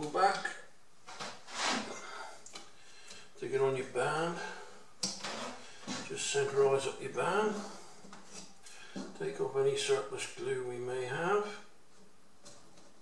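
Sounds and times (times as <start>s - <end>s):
scraping on workbench: 1.1s - 2.0s, 5.2s - 6.1s.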